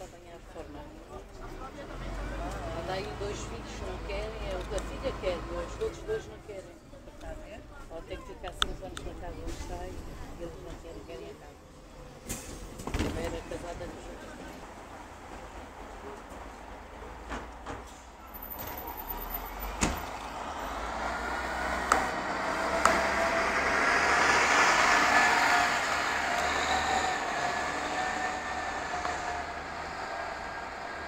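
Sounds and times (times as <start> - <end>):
bus engine and drivetrain whine: 0.0 - 31.0.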